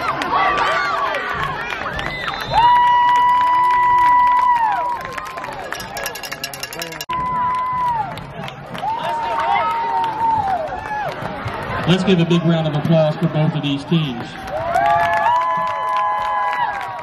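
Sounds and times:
crowd shouting and cheering: 0:00.0 - 0:17.0.

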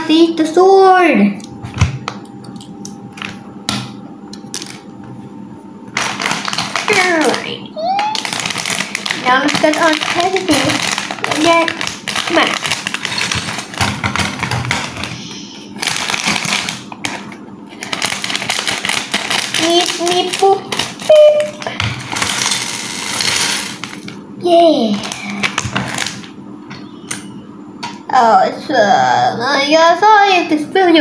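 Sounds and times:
child's voice: 0:00.0 - 0:01.4, 0:06.9 - 0:08.4, 0:09.2 - 0:12.6, 0:19.6 - 0:21.8, 0:24.4 - 0:25.5, 0:28.1 - 0:31.0
plastic bag crinkling: 0:05.9 - 0:24.2, 0:25.0 - 0:26.3
plastic pieces rattling: 0:06.0 - 0:07.4, 0:08.0 - 0:15.2, 0:15.8 - 0:24.1.

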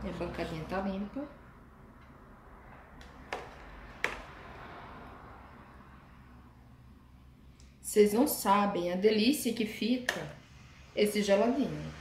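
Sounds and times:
containers set down on stone countertop: 0:03.0 - 0:04.4.

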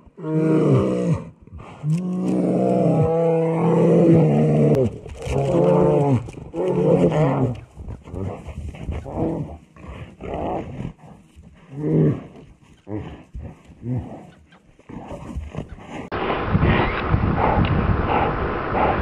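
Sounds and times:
bears growling and roaring: 0:00.0 - 0:19.0.

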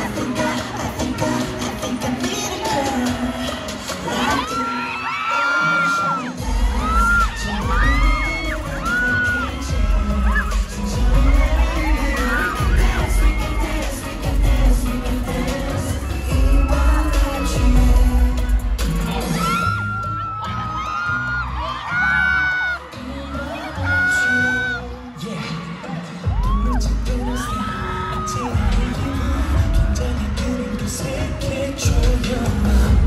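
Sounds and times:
group singing: 0:00.0 - 0:19.6, 0:22.8 - 0:33.0
dance track over a pa: 0:00.0 - 0:33.0
fans screaming: 0:00.0 - 0:33.0
heavy bass beat: 0:06.4 - 0:20.1, 0:26.3 - 0:33.0.

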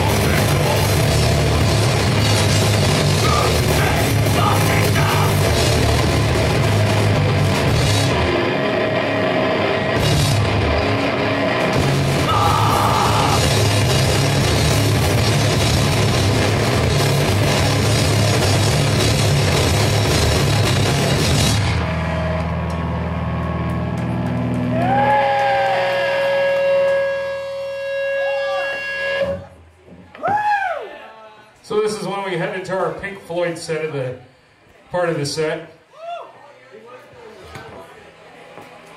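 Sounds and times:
drum kit: 0:00.0 - 0:25.6
distorted electric guitar: 0:00.0 - 0:29.7
bass guitar: 0:00.0 - 0:30.5
crowd whooping: 0:12.2 - 0:14.0, 0:23.0 - 0:31.4, 0:35.9 - 0:36.4
guitar chord droning: 0:25.5 - 0:29.6.

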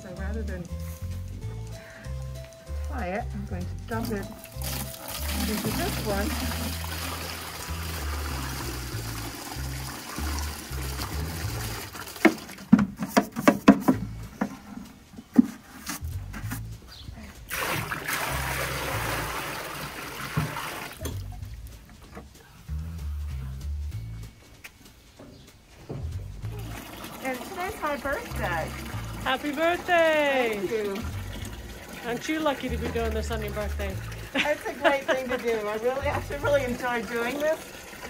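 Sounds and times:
background music: 0:00.0 - 0:38.0
water poured from bucket: 0:03.9 - 0:13.9, 0:17.4 - 0:21.8, 0:26.4 - 0:38.0
bucket knocking and clattering: 0:03.9 - 0:22.4, 0:25.2 - 0:38.0.

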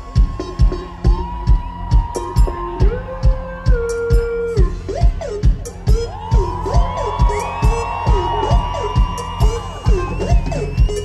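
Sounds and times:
crowd whooping and cheering: 0:00.0 - 0:11.0
live band playing: 0:00.0 - 0:11.0
steady kick drum: 0:00.0 - 0:11.0.

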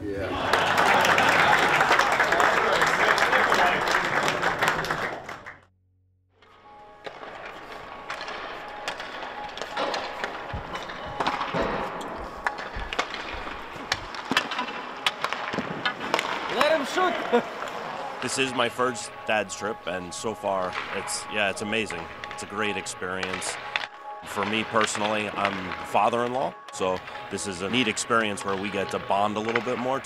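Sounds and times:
people applauding: 0:00.2 - 0:05.6
hockey sticks clacking on pucks: 0:07.0 - 0:30.0.

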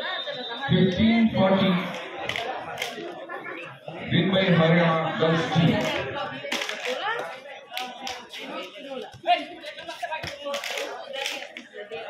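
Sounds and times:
sharp hand claps: 0:10.2 - 0:11.6.

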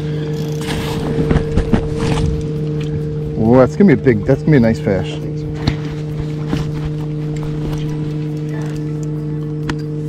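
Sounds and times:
boat motor humming: 0:00.0 - 0:10.0.

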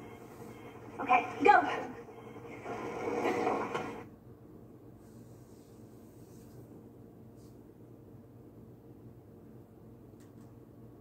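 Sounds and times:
movie soundtrack from television: 0:00.0 - 0:04.1
faint steady hum: 0:00.0 - 0:11.0.

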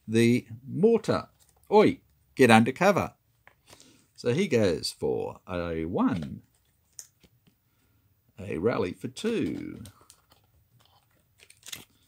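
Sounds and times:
card clicks and rustles: 0:09.1 - 0:12.0
card scraping: 0:09.2 - 0:12.0.

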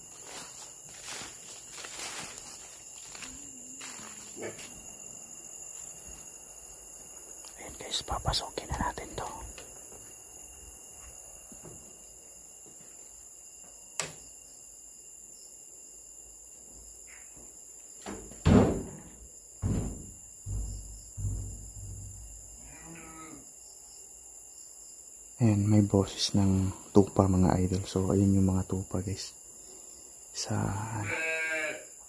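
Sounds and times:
crickets chirring: 0:00.0 - 0:32.0
knocks and rattles: 0:18.1 - 0:22.5
sheep bleating: 0:22.6 - 0:23.4, 0:30.9 - 0:31.9.

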